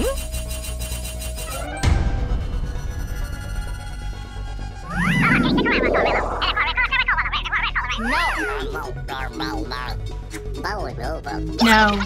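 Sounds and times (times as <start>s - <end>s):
background music: 0.0s - 12.0s
cartoon creature squealing: 4.9s - 10.0s.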